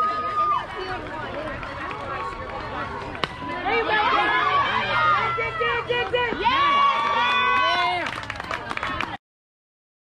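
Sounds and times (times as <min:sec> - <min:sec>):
chatter and calls of people: 0:00.0 - 0:09.2.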